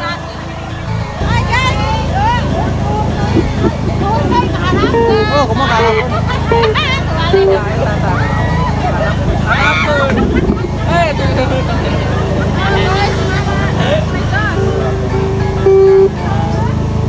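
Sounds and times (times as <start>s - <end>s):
crowd talking and calling out: 0.0s - 17.0s
steady low drone: 0.0s - 17.0s
loud held single-pitch note: 1.2s - 8.4s, 11.8s - 16.7s.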